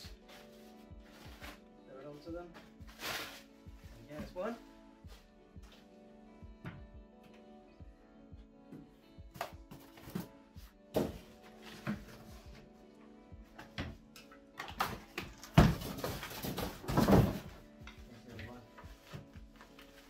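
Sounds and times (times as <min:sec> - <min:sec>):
background music: 0:00.0 - 0:20.0
plastic wrapping rustling: 0:02.6 - 0:04.1
knocks in cardboard box: 0:10.9 - 0:12.1, 0:14.8 - 0:17.6.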